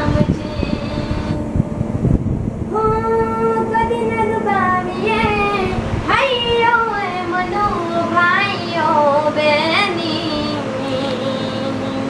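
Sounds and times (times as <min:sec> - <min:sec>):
girl singing: 0:00.0 - 0:01.9, 0:02.6 - 0:12.0.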